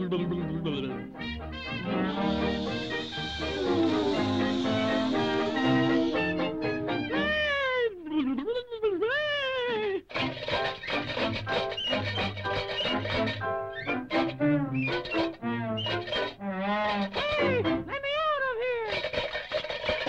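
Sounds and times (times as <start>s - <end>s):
orchestral cartoon music: 0.0s - 7.8s, 10.2s - 18.0s
loud yowling cries: 1.8s - 7.9s.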